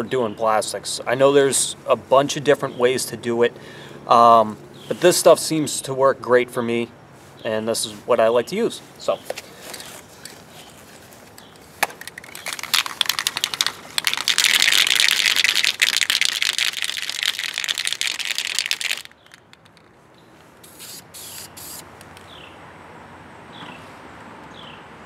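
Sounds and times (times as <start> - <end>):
spray paint can hissing: 12.0 - 19.9, 20.6 - 21.8.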